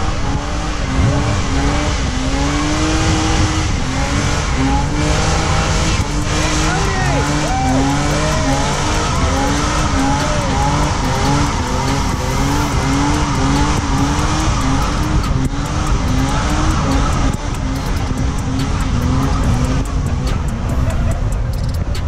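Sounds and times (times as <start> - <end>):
car engine at high revs: 0.0 - 22.0
tires squealing: 0.0 - 22.0.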